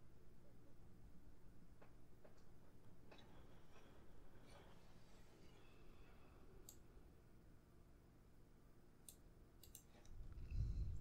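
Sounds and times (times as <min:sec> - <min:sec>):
small sharp clicks: 0:06.6 - 0:06.8, 0:09.0 - 0:10.2.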